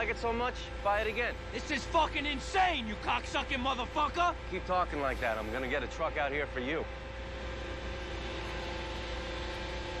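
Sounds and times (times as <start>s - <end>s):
tow truck mechanical hum: 0.0s - 10.0s.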